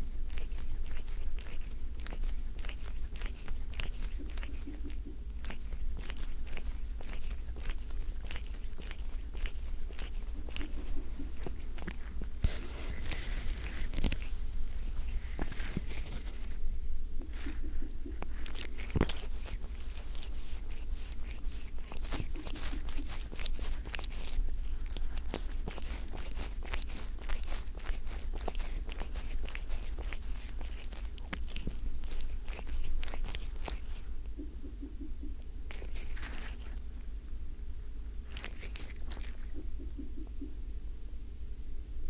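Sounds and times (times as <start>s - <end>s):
cat mouth clicks and crunches: 0.0s - 16.4s, 17.2s - 34.6s, 35.4s - 37.1s, 38.2s - 40.0s
low steady rumble: 0.0s - 42.0s.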